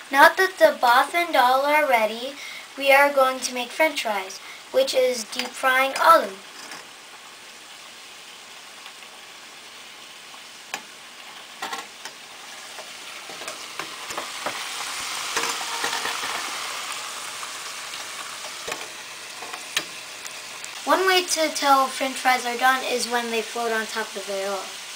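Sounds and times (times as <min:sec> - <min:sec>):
potato slices sizzling in oil: 0:00.0 - 0:24.9.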